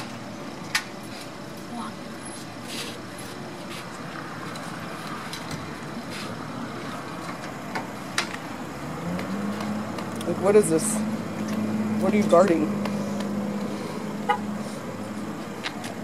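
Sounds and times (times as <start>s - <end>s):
traffic hum: 0.0s - 16.0s.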